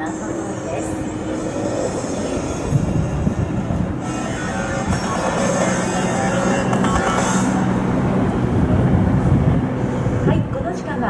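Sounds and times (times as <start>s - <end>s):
outboard motor running: 0.0s - 10.7s.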